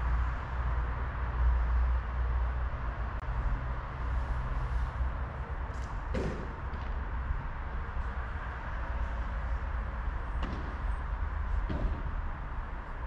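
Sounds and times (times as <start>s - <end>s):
padel ball knocking off rackets: 10.3s - 11.0s.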